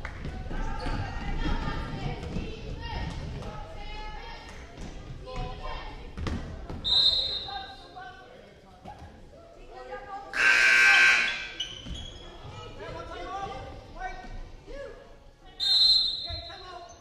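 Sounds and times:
voices echoing in a gym: 0.0 - 17.0
referee's whistle: 6.8 - 7.5, 10.4 - 11.8, 15.6 - 16.6.

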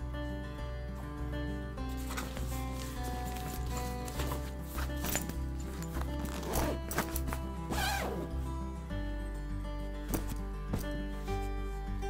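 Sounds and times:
background music: 0.0 - 12.0
bag zipper being pulled closed: 2.0 - 8.4.

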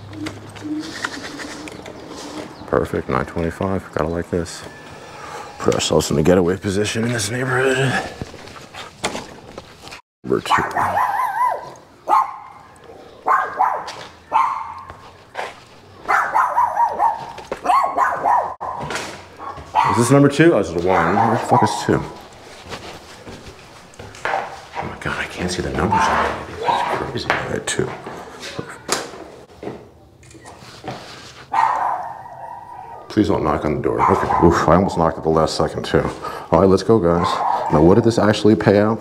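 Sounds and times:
dove cooing: 0.0 - 2.7
dog barking: 10.5 - 15.0, 16.0 - 20.1, 20.9 - 22.1, 24.3 - 24.6, 25.8 - 27.0, 31.5 - 33.1, 33.9 - 35.0, 37.2 - 38.0.

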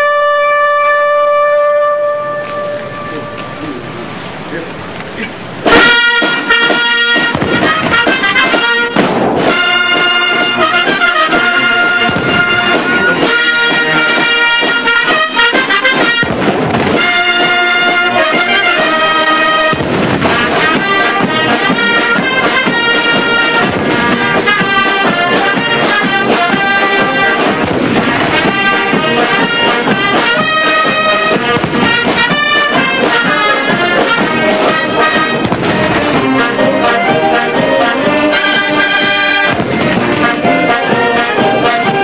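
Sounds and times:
military brass band with drums: 0.0 - 42.0
artillery gun booms: 5.6 - 36.6, 39.2 - 41.2.

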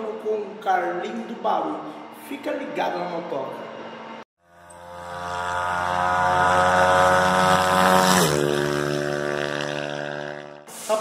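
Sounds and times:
machine-like drone: 3.5 - 10.7.

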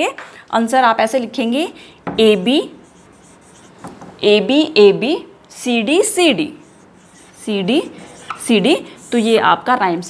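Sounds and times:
marker writing on whiteboard: 2.2 - 4.2, 5.9 - 9.6
person speaking: 2.2 - 10.0.

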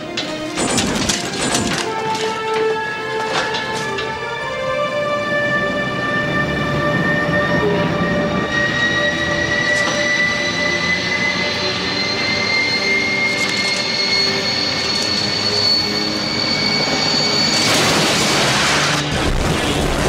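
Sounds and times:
high whine rising in pitch: 5.1 - 19.4.

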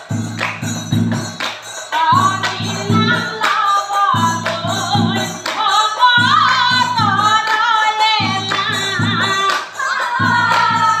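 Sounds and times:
brass cymbals clashing: 0.0 - 11.0
woman singing devotional chant: 1.9 - 11.0.

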